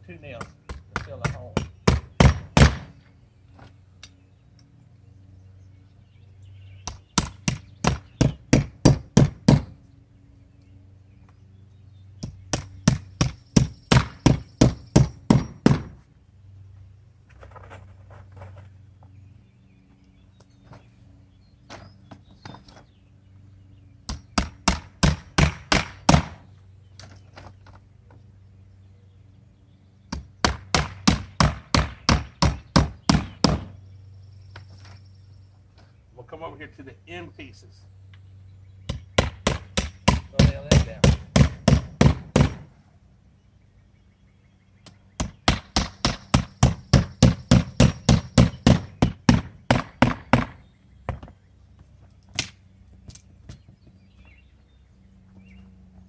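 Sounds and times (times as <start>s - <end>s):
low steady hum: 0.0s - 56.0s
hammer driving nails into wood: 39.2s - 42.6s.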